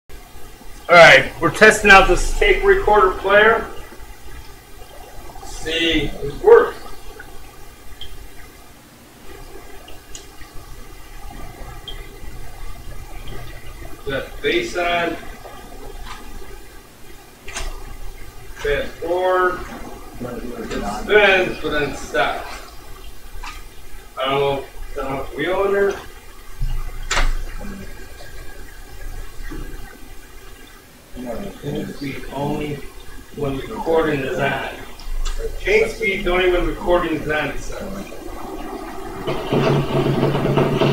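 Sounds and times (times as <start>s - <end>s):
tape recorder hum and hiss: 0.1s - 40.9s.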